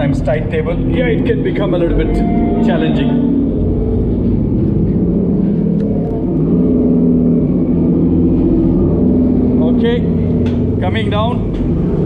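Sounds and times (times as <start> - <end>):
ship machinery low drone: 0.0 - 12.0.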